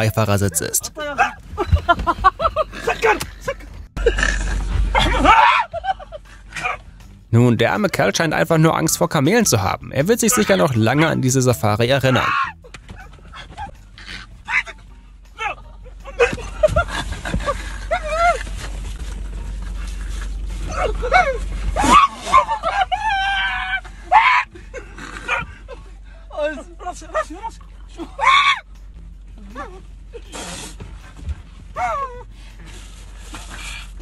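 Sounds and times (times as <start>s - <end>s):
man yelping and whimpering: 11.9s - 12.6s.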